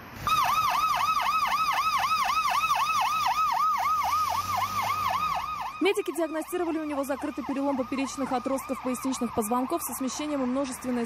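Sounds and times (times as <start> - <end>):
ambulance siren yelping: 0.2 - 11.0.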